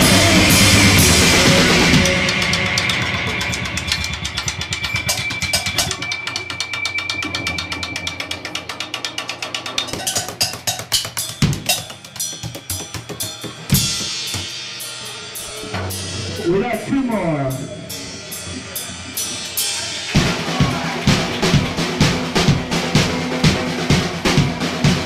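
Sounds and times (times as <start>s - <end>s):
rock drum kit playing: 0.0s - 25.0s
cymbal crashes: 13.7s - 25.0s
held low note: 15.4s - 20.0s.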